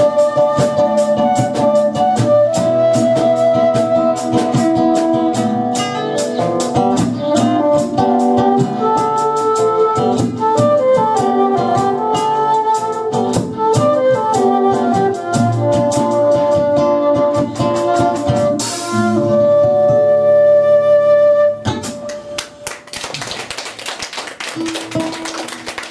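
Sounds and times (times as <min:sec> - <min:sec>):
rock band accompaniment: 0:00.0 - 0:20.4, 0:21.5 - 0:22.8, 0:24.3 - 0:25.9
flute melody: 0:00.0 - 0:22.6.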